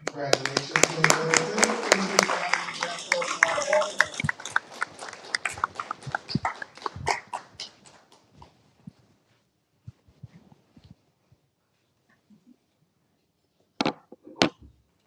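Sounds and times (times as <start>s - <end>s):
voices: 0.0s - 8.2s
group applauding: 0.0s - 8.6s.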